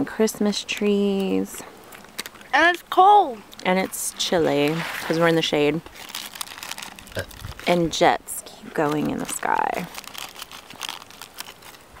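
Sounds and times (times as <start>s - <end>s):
crackling and rustling: 0.8s - 12.0s.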